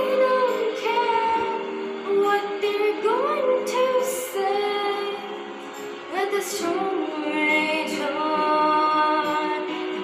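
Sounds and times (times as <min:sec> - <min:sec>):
girl singing into microphone: 0:00.0 - 0:10.0.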